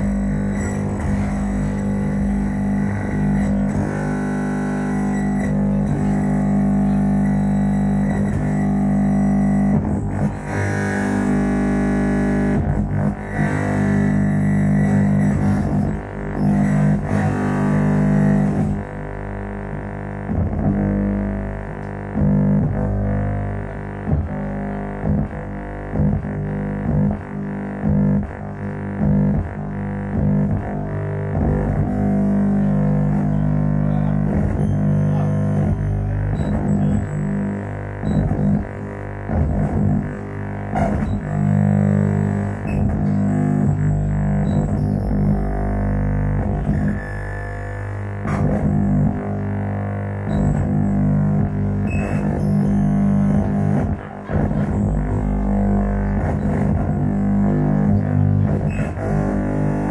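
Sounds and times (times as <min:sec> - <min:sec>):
electronic drone music: 0:00.0 - 0:59.9.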